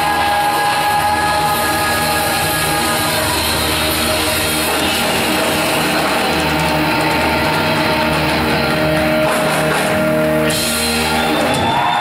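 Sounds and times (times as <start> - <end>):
live pop-rock band playing: 0.0 - 12.0.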